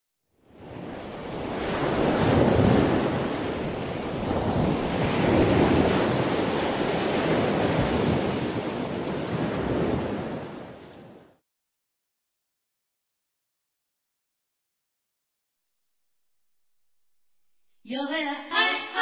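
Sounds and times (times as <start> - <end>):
ocean waves breaking: 0.4 - 11.4.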